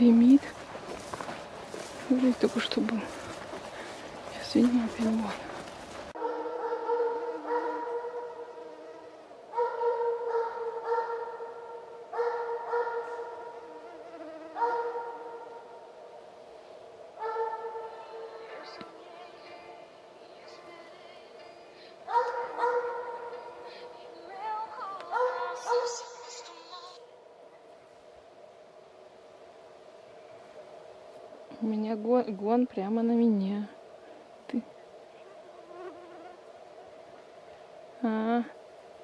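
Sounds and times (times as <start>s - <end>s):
hound baying: 6.2s - 8.7s, 9.5s - 13.7s, 14.6s - 15.6s, 17.2s - 18.4s, 22.1s - 23.9s, 25.1s - 26.3s.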